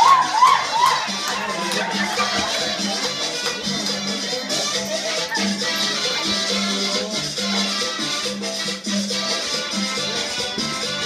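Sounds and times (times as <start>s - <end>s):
person shouting: 0.0s - 2.2s
dance music: 0.0s - 11.0s.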